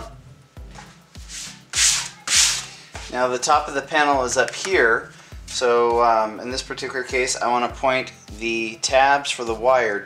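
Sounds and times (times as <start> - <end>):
background music with steady beat: 0.0 - 10.0
hands scraping foam panel: 1.3 - 3.2.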